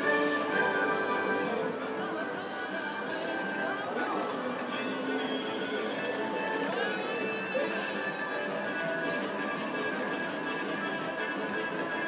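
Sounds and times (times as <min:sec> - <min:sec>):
slot machine bonus music: 0:00.0 - 0:02.0
casino voices: 0:00.0 - 0:12.0.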